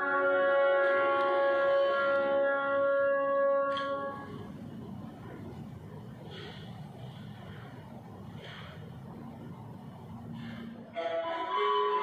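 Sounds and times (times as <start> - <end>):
faint low rushing noise: 4.1 - 11.5.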